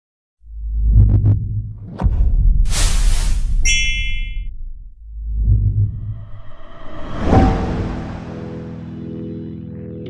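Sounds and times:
deep low rumble: 0:04.4 - 0:09.0.

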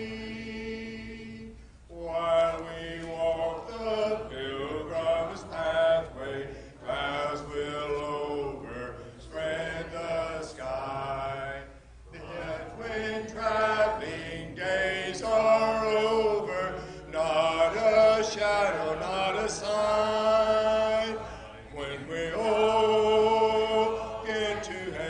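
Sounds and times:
congregation singing a hymn: 0:00.0 - 0:25.0.

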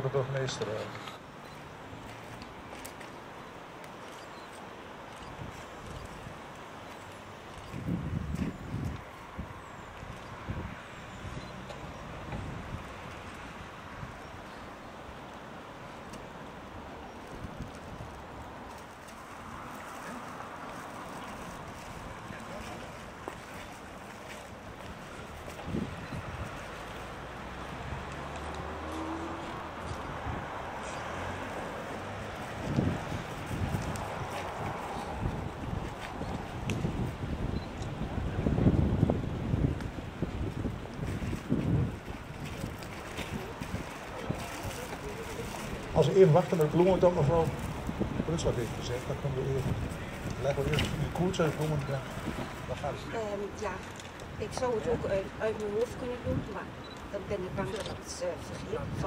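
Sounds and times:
street traffic noise: 0:00.0 - 0:59.0
wind on microphone: 0:07.4 - 0:14.6, 0:17.1 - 0:18.7, 0:19.4 - 0:59.0
vehicle engine passing: 0:26.8 - 0:35.5
faint voices: 0:42.6 - 0:47.7.

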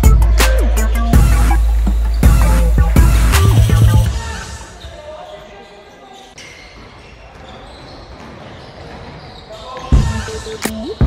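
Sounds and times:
players' voices echoing: 0:00.0 - 0:11.0.

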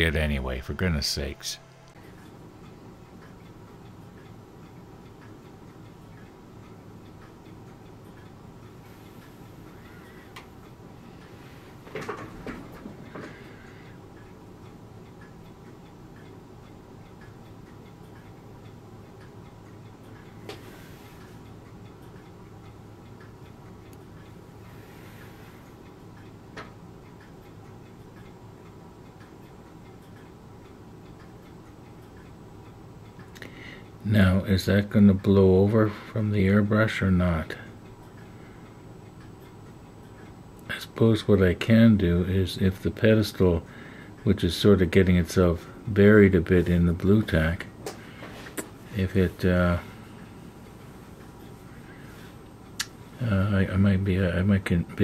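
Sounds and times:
low hum: 0:00.0 - 0:54.9
faint ticking: 0:00.0 - 0:55.0.

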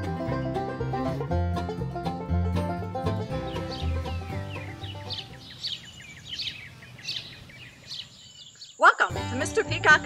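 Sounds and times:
music: 0:00.0 - 0:05.5, 0:09.1 - 0:10.0
small birds chirping: 0:03.2 - 0:09.1.

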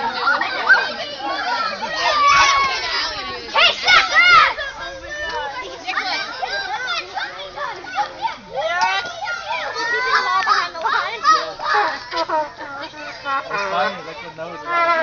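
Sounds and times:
adults talking: 0:00.0 - 0:15.0
children shouting and chattering: 0:00.0 - 0:15.0.

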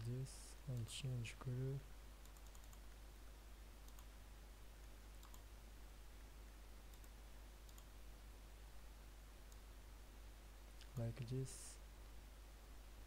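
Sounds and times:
steady low hum: 0:00.0 - 0:13.0
computer mouse clicks: 0:02.2 - 0:03.0, 0:03.8 - 0:04.1, 0:05.2 - 0:05.5, 0:06.9 - 0:07.9.

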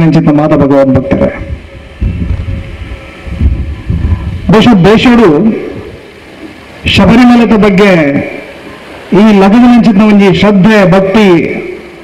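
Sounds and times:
wind buffeting microphone: 0:01.2 - 0:04.6.

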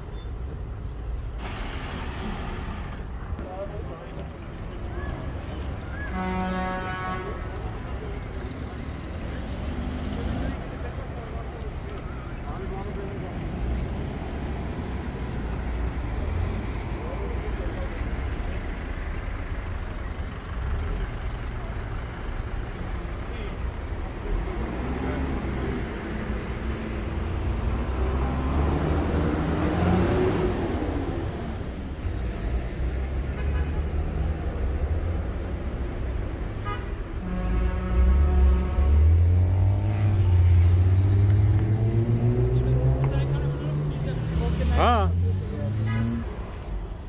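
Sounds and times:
traffic rumble: 0:00.0 - 0:47.0
vehicle engine revving: 0:38.0 - 0:46.6.

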